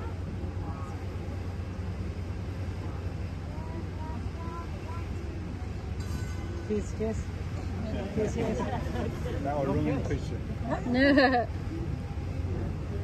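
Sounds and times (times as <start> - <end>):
people talking: 0.0 - 1.8, 2.5 - 13.0
steady low rumble: 0.0 - 13.0.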